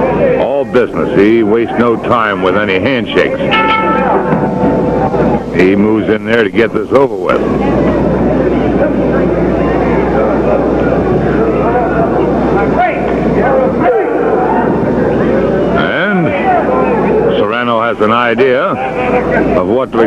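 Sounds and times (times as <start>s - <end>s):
steady low hum: 0.0s - 17.6s
crowd shouting and chattering: 0.0s - 20.0s.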